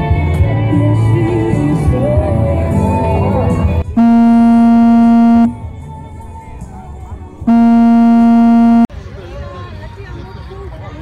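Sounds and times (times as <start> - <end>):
music: 0.0 - 8.8
loud horn blasts: 4.0 - 5.5, 7.5 - 8.9.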